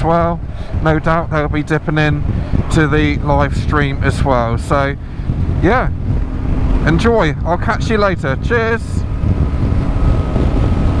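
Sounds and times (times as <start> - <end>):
tyres on road: 0.0 - 11.0
wind noise on microphone: 0.0 - 11.0
motorcycle engine: 5.0 - 11.0.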